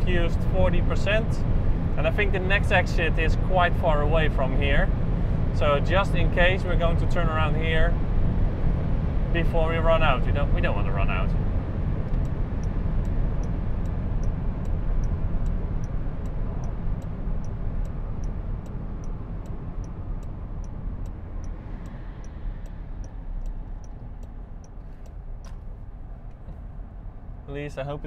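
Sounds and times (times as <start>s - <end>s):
wind and tyre noise in car: 0.0s - 28.0s
turn indicator ticking: 11.4s - 27.4s.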